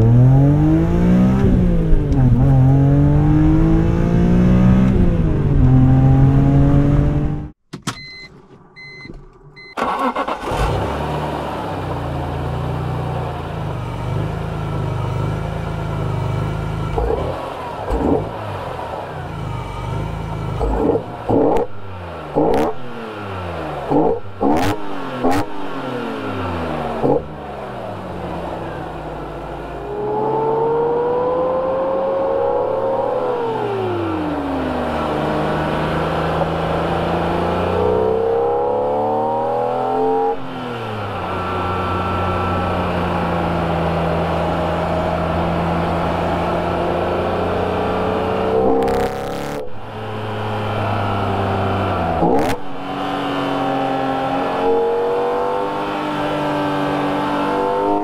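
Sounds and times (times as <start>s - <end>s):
car engine revving and idling: 0.0s - 7.6s, 9.6s - 58.0s
electronic beeps: 8.0s - 9.8s.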